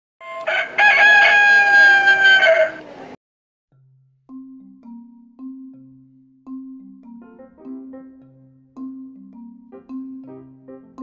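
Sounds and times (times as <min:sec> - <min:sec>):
rooster crowing: 0:00.2 - 0:02.9.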